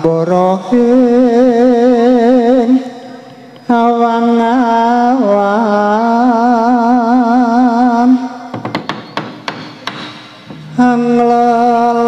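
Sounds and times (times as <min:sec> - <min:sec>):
percussion strikes: 0:08.5 - 0:11.1.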